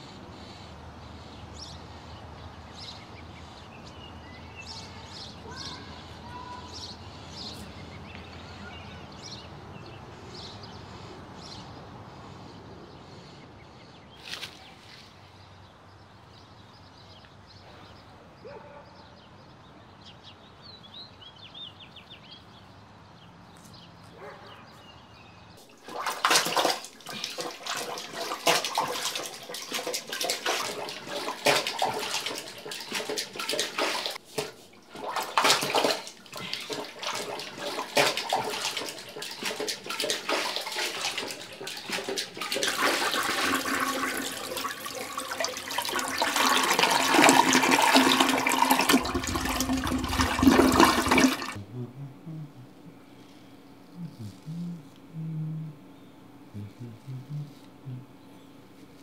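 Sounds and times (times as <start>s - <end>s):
water rushing and splashing: 25.6s - 51.6s.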